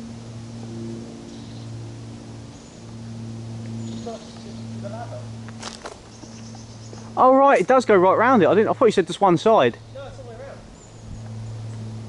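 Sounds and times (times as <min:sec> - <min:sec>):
transformer electrical hum: 0:00.0 - 0:12.0
faint bird chirps: 0:03.8 - 0:04.7.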